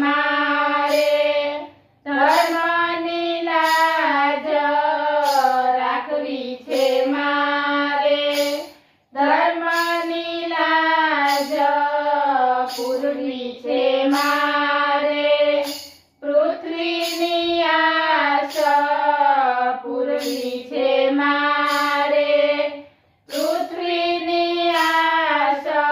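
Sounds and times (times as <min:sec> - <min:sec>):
women singing in unison: 0:00.0 - 0:25.9.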